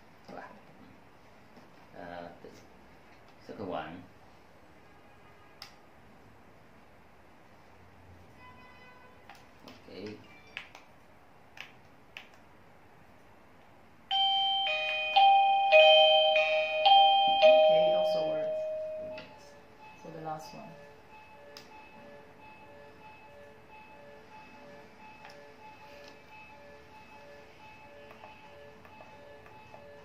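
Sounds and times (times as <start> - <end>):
doorbell chime melody: 14.1 - 20.2.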